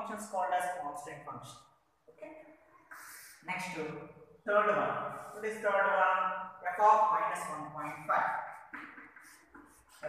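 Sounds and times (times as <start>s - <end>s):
chalk scratching on blackboard: 7.8s - 10.0s.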